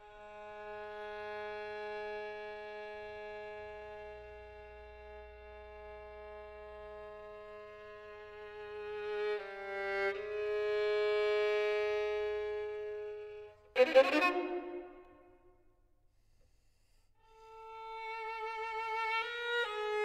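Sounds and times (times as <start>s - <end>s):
solo violin with chamber orchestra: 0.0s - 15.5s, 17.2s - 20.0s.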